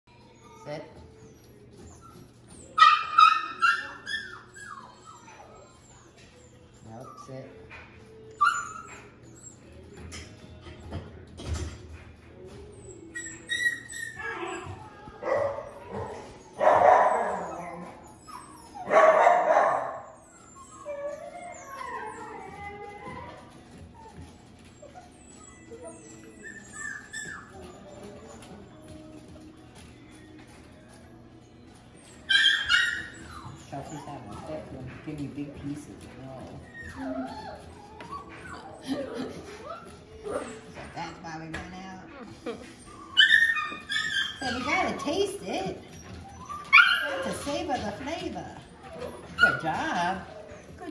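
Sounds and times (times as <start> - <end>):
puppy whimpers: 0.1 - 11.3, 12.4 - 50.9
puppy whining and yipping: 0.1 - 11.6, 12.4 - 34.8, 35.7 - 41.2, 42.0 - 50.9.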